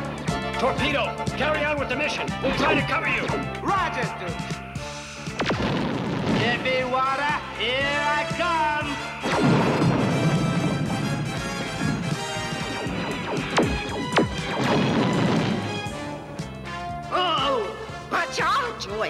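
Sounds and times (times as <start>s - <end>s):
action music: 0.0s - 19.0s
sharp blasts: 5.3s - 6.8s, 9.2s - 16.5s
explosion: 5.4s - 6.8s, 9.2s - 16.2s
low rumble: 9.4s - 16.4s
warbling laser zaps: 12.7s - 15.6s.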